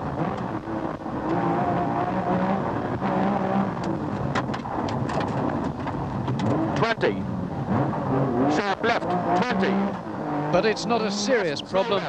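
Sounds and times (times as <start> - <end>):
rally car engine at speed: 0.0 - 12.0.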